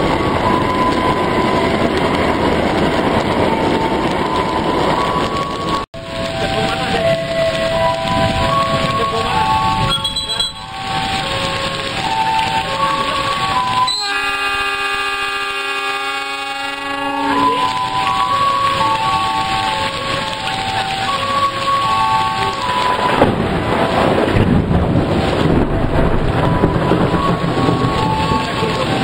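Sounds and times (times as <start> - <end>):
heavy rain on a roof: 0.0 - 29.0.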